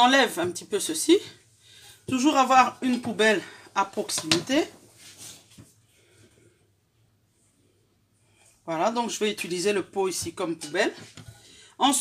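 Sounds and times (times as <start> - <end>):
soft rustle: 4.6 - 6.6.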